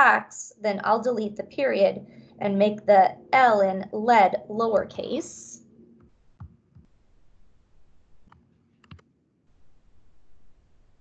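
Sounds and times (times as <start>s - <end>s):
computer mouse clicks: 8.2s - 9.0s
keyboard clicks: 8.3s - 9.0s.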